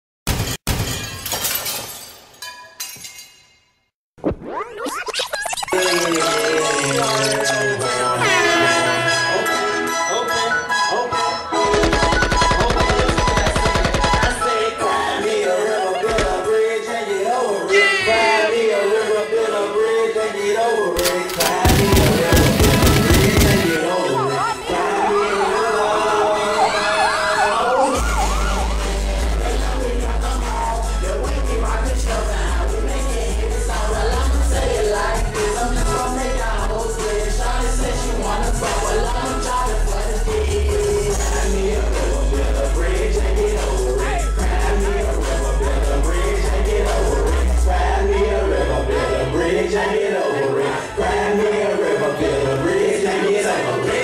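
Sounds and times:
glass shattering: 0:00.3 - 0:03.9
hip hop beat with heavy drums: 0:21.0 - 0:26.6, 0:27.8 - 0:48.2
wailing siren effect: 0:24.7 - 0:28.8
deep bass line: 0:28.0 - 0:48.0.

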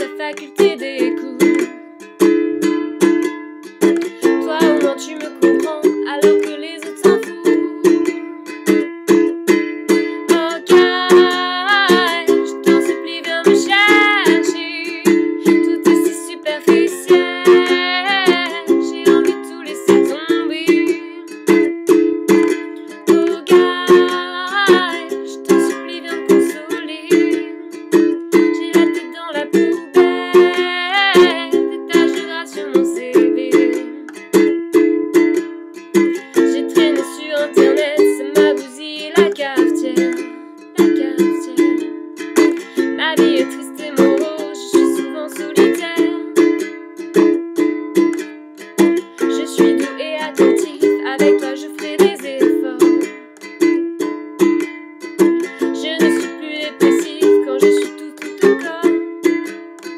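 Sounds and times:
woman singing: 0:00.0 - 0:01.9, 0:04.0 - 0:08.8, 0:09.9 - 0:21.6, 0:22.4 - 0:34.2, 0:36.0 - 0:46.7, 0:48.8 - 0:53.2, 0:55.4 - 0:59.2
ukulele strumming chords: 0:00.0 - 0:59.9.

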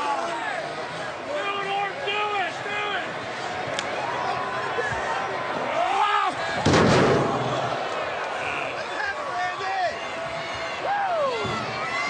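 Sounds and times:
arena crowd noise: 0:00.0 - 0:12.0
body crashing into steel steps: 0:06.6 - 0:07.6.

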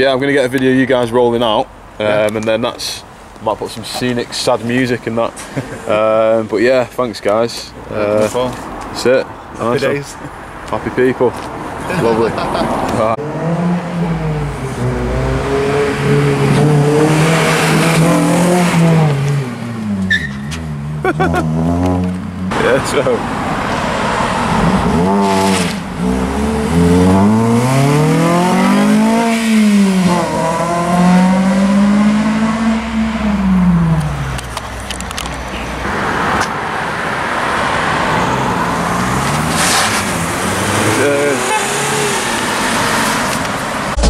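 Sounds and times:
road traffic: 0:00.0 - 0:44.0
car engine accelerating: 0:12.8 - 0:34.4.

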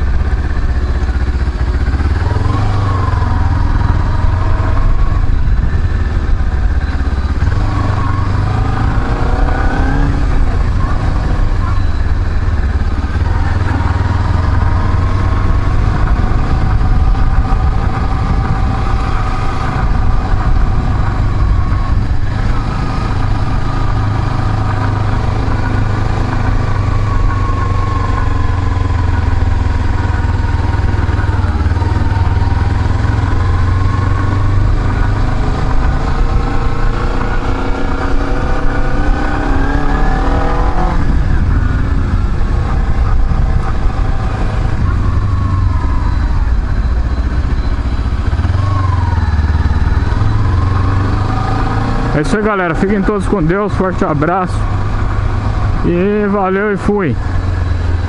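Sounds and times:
low rumble: 0:00.0 - 0:56.4
motorcycle engine revving: 0:00.0 - 0:58.0.

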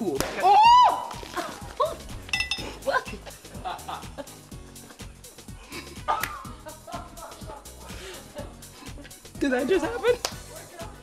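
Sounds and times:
background music: 0:00.0 - 0:11.0
women crying out: 0:00.4 - 0:02.0
cork clinking on hard surface: 0:02.3 - 0:02.7.

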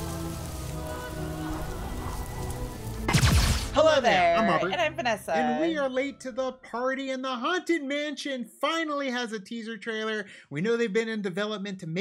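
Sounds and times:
rain-like hiss: 0:00.0 - 0:04.6.

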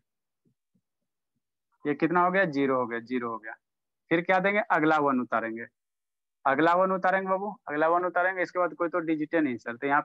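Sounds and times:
man speaking: 0:01.8 - 0:05.7.

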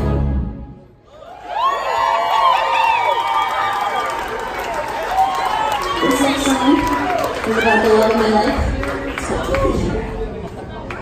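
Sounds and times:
audience cheering and whooping: 0:01.0 - 0:08.5.

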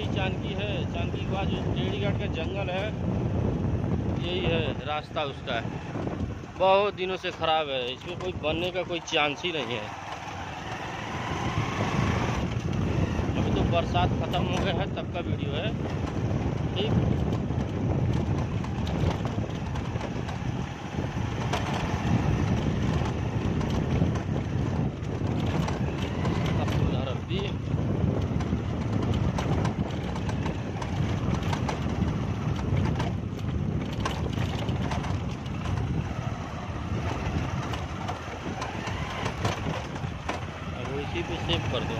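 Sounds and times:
vehicle on rough dirt road: 0:00.0 - 0:41.9
wind rumbling on microphone: 0:00.0 - 0:41.9.

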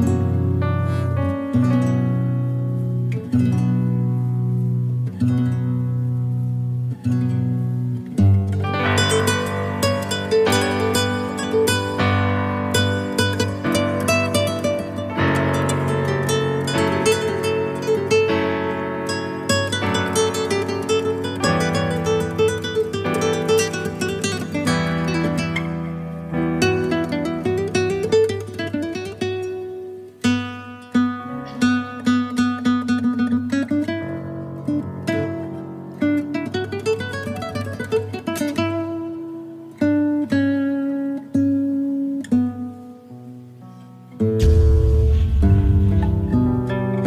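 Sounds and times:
plucked acoustic guitar: 0:00.0 - 0:47.0.

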